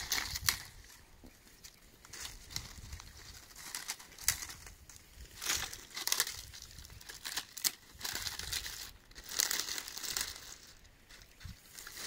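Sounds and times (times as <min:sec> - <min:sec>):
dry branches rustling: 0:00.0 - 0:12.0
twigs crackling: 0:00.0 - 0:12.0.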